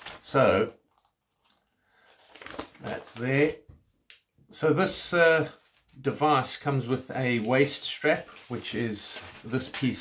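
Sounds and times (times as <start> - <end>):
paper rustling: 0.0 - 3.9, 4.9 - 10.0.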